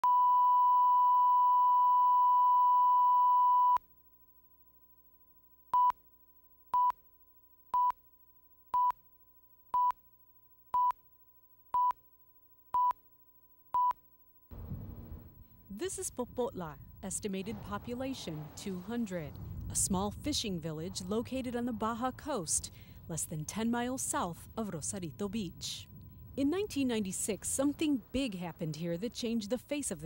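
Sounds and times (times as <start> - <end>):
countdown beeps: 9.8 - 10.0, 11.7 - 12.0.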